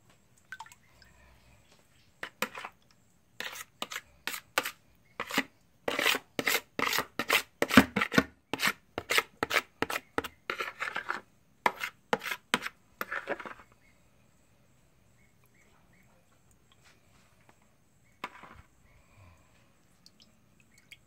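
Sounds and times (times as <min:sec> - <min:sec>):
metal spoon scraping plastic bowl: 0:02.2 - 0:02.8, 0:03.4 - 0:13.8, 0:18.2 - 0:18.7.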